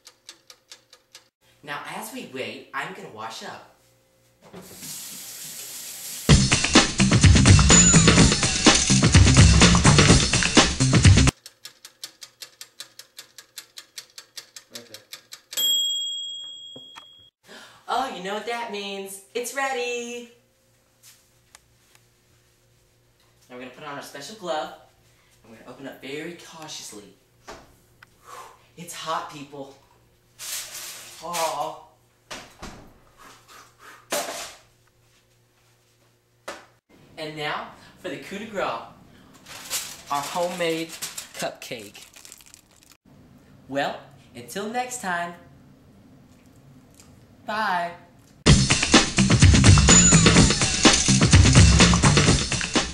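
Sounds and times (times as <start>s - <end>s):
drum-heavy music: 6.3s - 11.3s, 48.5s - 52.9s
timer bell ring: 15.6s - 17.3s.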